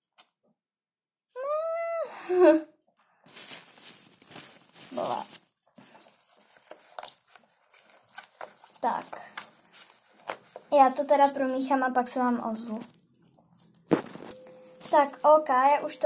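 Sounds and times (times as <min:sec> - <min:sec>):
stick stirring foam slime: 0:03.3 - 0:16.0.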